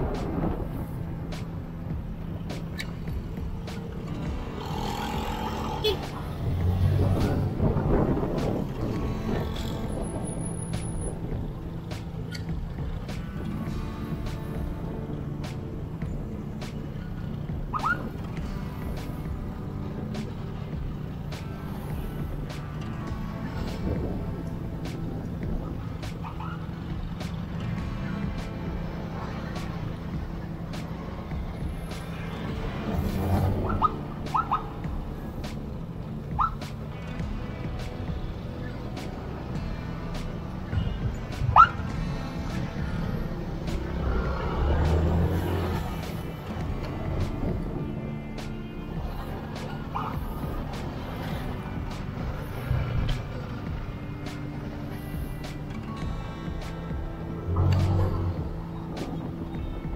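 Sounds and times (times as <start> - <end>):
motorbike engine rumble: 0.0 - 59.9
motor scooter engine: 3.1 - 6.8.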